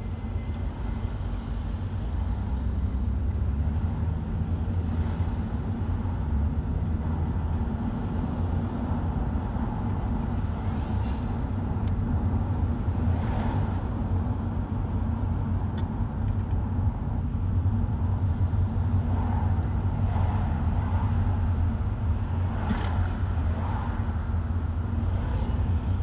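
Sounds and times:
car interior rumble: 0:00.0 - 0:26.0
passing traffic: 0:00.0 - 0:26.0.

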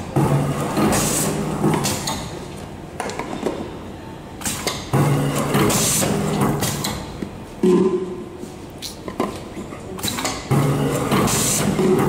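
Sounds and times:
labeling machine running: 0:00.0 - 0:02.4, 0:04.4 - 0:07.2, 0:10.0 - 0:12.0.

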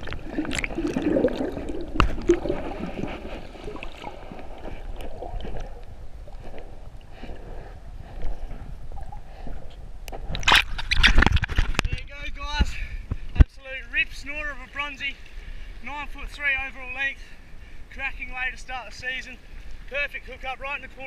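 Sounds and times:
seawater sloshing and splashing: 0:00.0 - 0:11.8.

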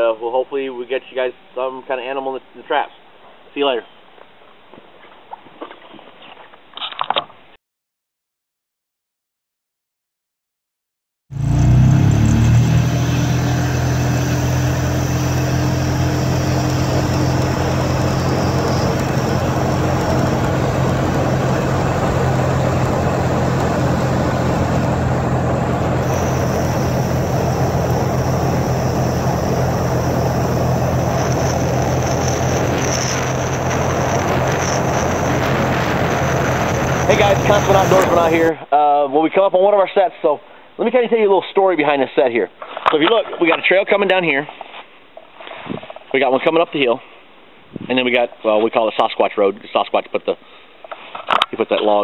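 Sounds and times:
vehicle engine hum: 0:11.3 - 0:38.5
tyre and road noise: 0:11.4 - 0:38.5.

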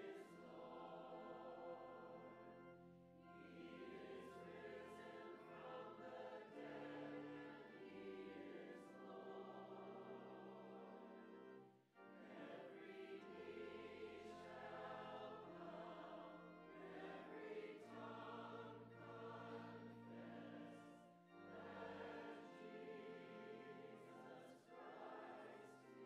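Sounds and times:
choir singing a hymn: 0:00.0 - 0:26.0
organ playing: 0:00.0 - 0:26.0.

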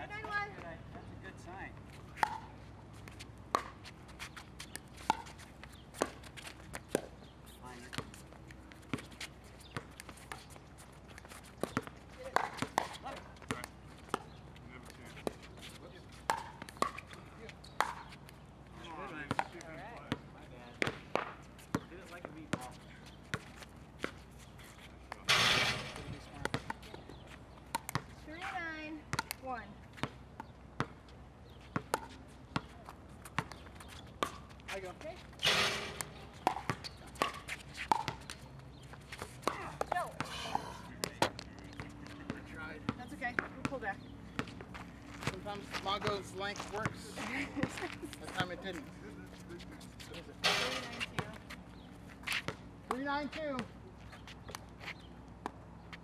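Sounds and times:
paddles striking pickleball: 0:02.1 - 0:04.0, 0:04.6 - 0:07.2, 0:11.3 - 0:15.4, 0:16.1 - 0:18.4, 0:25.1 - 0:29.4, 0:31.6 - 0:47.8.

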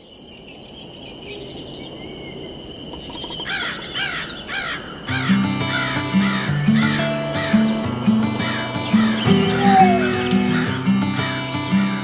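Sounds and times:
bird calling: 0:00.0 - 0:12.0
low sustained music chords: 0:05.3 - 0:12.0
steady high tone: 0:08.6 - 0:11.0.

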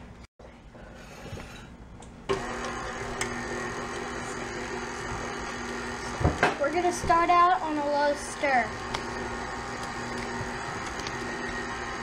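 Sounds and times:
stand mixer motor running: 0:02.3 - 0:06.6, 0:08.2 - 0:12.0.

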